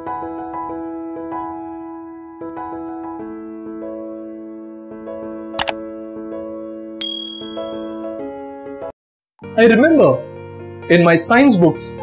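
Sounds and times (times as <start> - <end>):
bell-like notification ding: 7.0 - 8.1.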